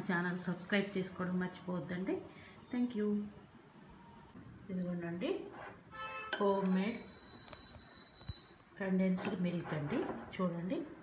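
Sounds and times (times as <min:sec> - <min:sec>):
metal spoon clinking glass bowl: 0:06.3 - 0:07.8.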